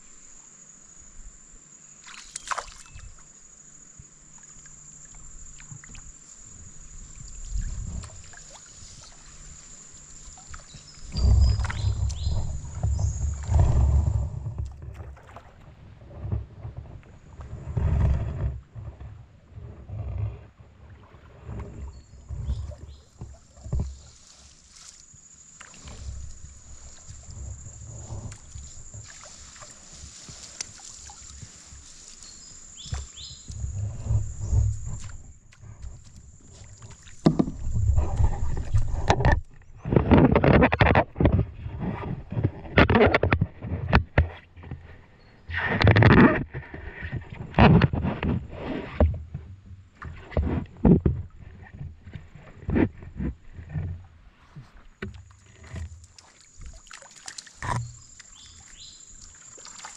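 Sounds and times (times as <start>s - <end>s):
water and mud splashing: 1.9s - 59.9s.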